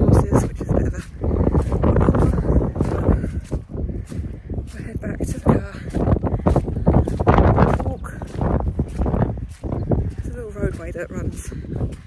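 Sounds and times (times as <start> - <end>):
wind buffeting microphone: 0.0 - 12.0
person speaking: 4.7 - 6.0.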